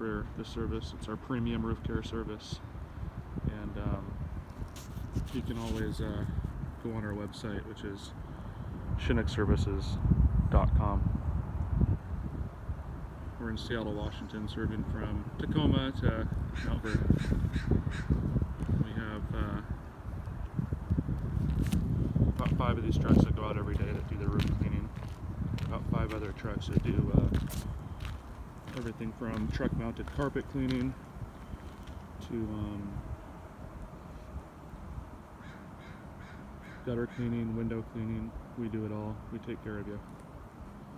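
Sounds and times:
outdoor background noise: 0.0 - 40.9
crow cawing: 16.6 - 18.2, 35.4 - 36.9
bird calling: 35.4 - 37.4.

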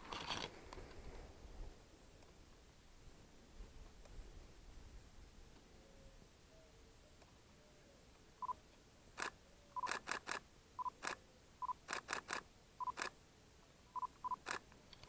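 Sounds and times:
camera shutter clicks: 9.2 - 11.2, 11.8 - 13.2, 14.3 - 14.6
short autofocus beeps: 12.8 - 13.1.

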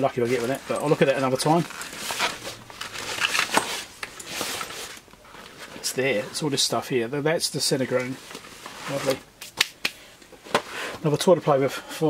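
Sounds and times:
fabric bag rustling: 0.0 - 6.4.

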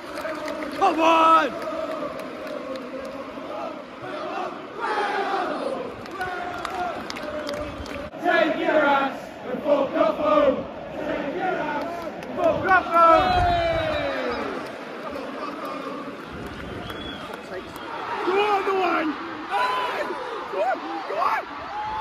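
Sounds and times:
crowd chanting and singing: 0.0 - 17.0, 17.6 - 21.8
crowd murmur: 14.1 - 21.7.

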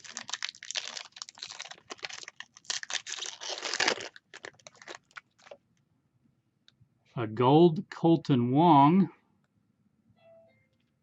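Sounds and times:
foil wrapper crinkling and tearing: 0.0 - 5.6.

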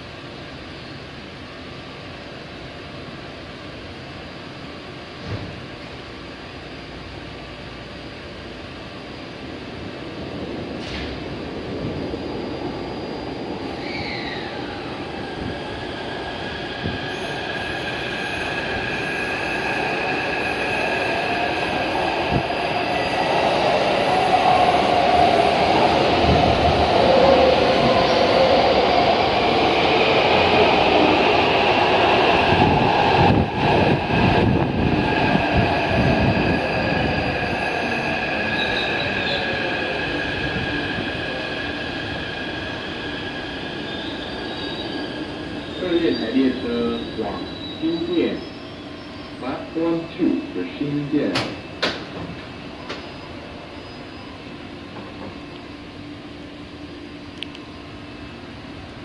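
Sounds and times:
train whine and wheel rumble: 0.0 - 59.0
train braking to a stop: 10.6 - 58.8.

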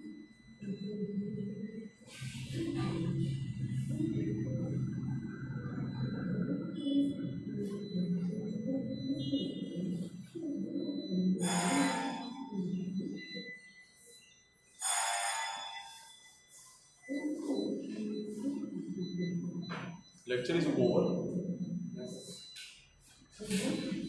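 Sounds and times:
muffled voices talking: 0.0 - 14.7, 15.7 - 24.0.

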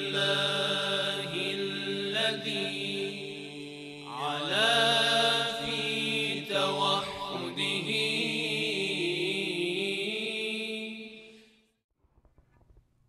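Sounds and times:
chanted vocals: 0.0 - 11.4.

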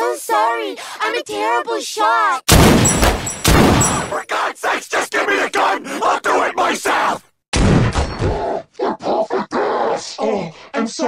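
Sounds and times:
cartoon gunshot bang: 2.5 - 4.2, 7.5 - 8.2.

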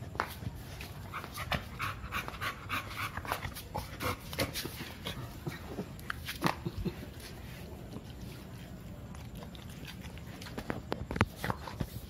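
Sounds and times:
dog panting: 0.9 - 5.9.

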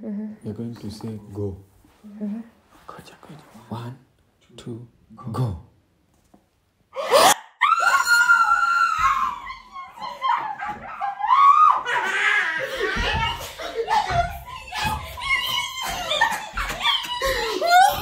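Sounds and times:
excited shrieks: 7.0 - 10.0
high-pitched joyful scream: 7.0 - 18.0
laughter: 9.5 - 18.0.

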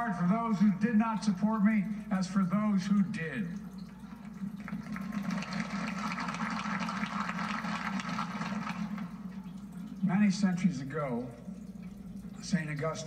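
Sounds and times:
audience applauding through speaker: 4.3 - 9.3.

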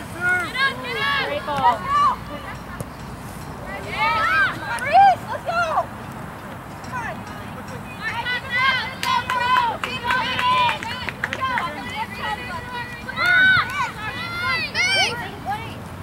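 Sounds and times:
women shouting and calling: 0.2 - 2.6, 3.7 - 5.9, 6.9 - 15.8.

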